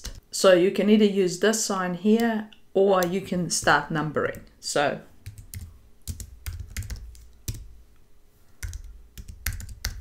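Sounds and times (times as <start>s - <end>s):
computer keyboard typing: 0.0s - 0.2s, 5.2s - 7.7s, 8.6s - 10.0s.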